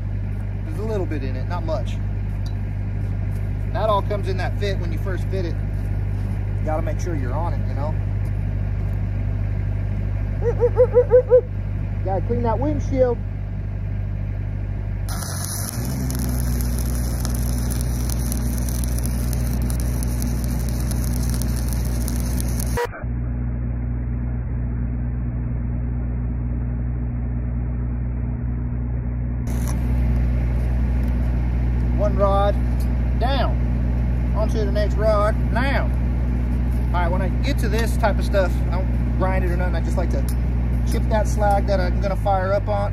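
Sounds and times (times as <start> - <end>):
welding machine engine running: 0.0 - 22.9, 29.5 - 42.9
welding arc crackling and hissing: 15.1 - 22.9, 29.5 - 32.9.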